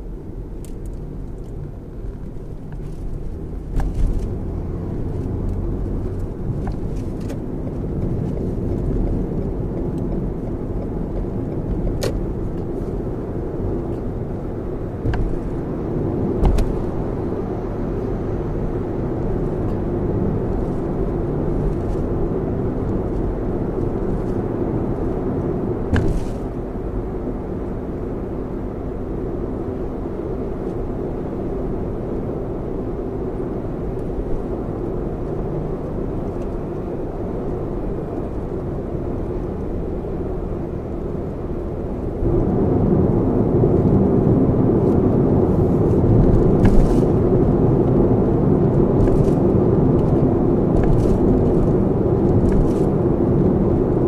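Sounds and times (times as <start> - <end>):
road and tyre rumble: 0.0 - 54.0.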